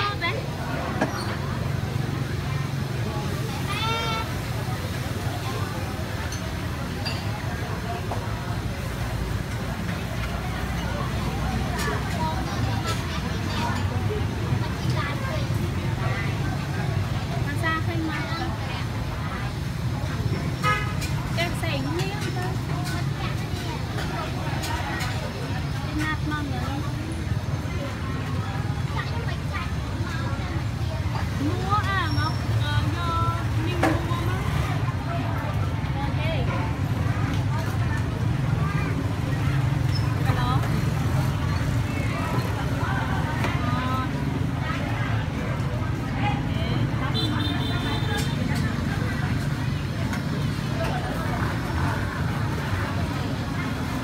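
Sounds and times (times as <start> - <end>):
people chattering: 0.0 - 54.0
street traffic rumble: 0.0 - 54.0
voices talking: 0.0 - 54.0.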